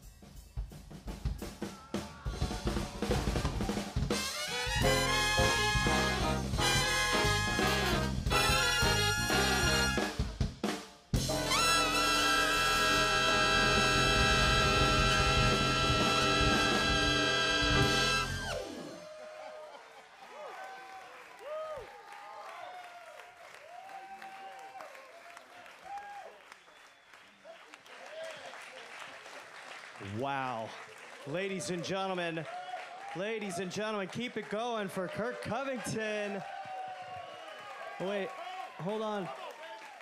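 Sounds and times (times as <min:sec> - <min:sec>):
audience whooping and clapping: 0:01.6 - 0:10.1, 0:11.5 - 0:40.0
big band chord hits: 0:04.2 - 0:10.4, 0:11.2 - 0:18.9.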